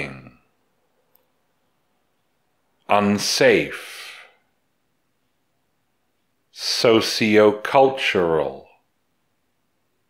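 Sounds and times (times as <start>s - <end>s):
person speaking: 0.0s - 0.5s, 2.8s - 4.4s, 6.5s - 8.9s.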